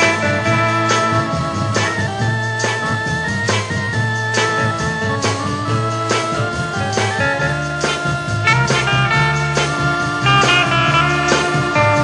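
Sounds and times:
pop band with electric guitar: 0.0 - 12.0.

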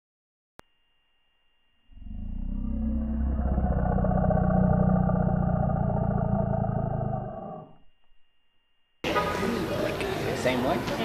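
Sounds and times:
deep rumbling roar: 1.9 - 7.8.

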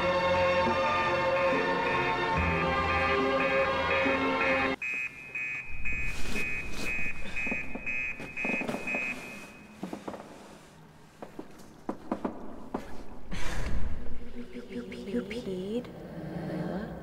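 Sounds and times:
music: 0.0 - 4.8
alarm clock beeping: 1.2 - 9.8.

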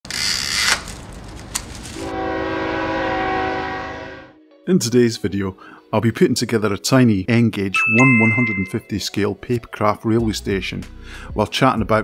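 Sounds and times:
multi-tone train horn: 2.0 - 4.4.

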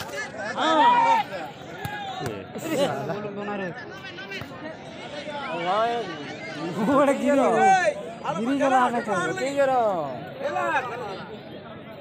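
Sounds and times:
crowd chatter: 0.0 - 12.0
people talking and calling out: 0.0 - 12.0.

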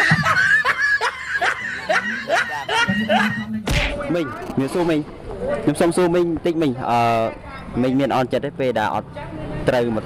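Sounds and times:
man chuckling: 0.0 - 3.6.

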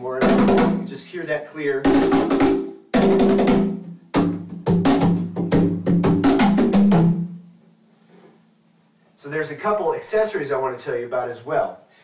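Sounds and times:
cajon played by hand: 2.0 - 7.2.

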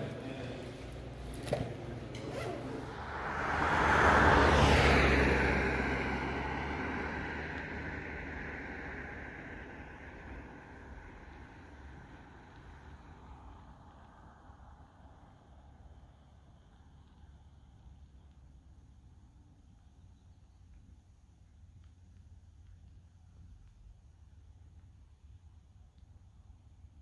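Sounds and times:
road vehicle passing by: 0.0 - 17.2.

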